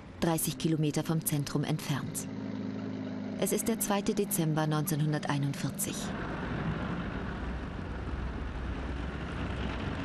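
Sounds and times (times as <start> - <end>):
tank engines droning: 0.0 - 10.0.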